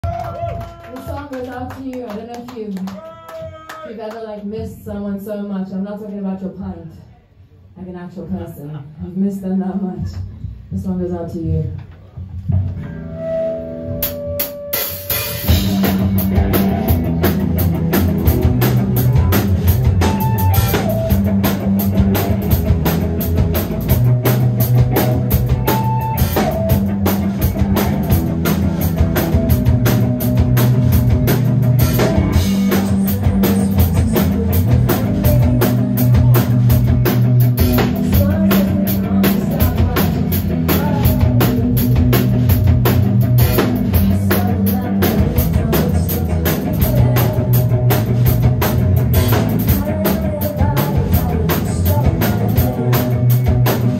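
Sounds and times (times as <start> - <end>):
rock band playing live: 12.2 - 53.9
driving drum beat: 14.0 - 53.9.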